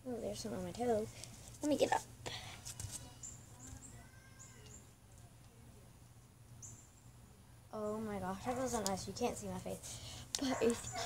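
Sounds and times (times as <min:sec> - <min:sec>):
faint high bird chirps: 0:03.2 - 0:04.9.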